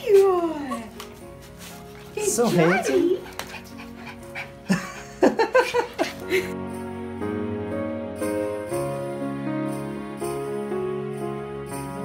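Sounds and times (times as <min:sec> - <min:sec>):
background music: 0:00.0 - 0:12.0
small dog yipping: 0:02.4 - 0:03.4.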